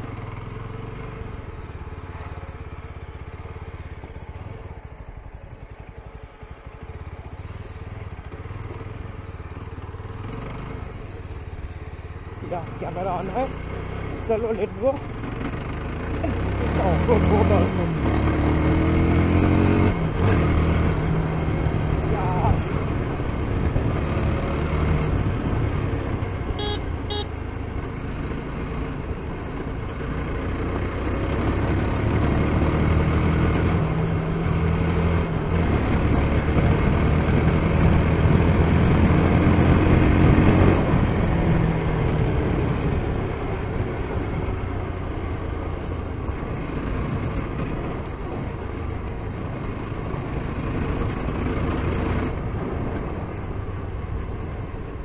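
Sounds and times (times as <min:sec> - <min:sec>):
motorcycle engine running: 0:00.0 - 0:55.0
wind and road noise: 0:00.0 - 0:55.0
short high beeps: 0:26.6 - 0:27.3.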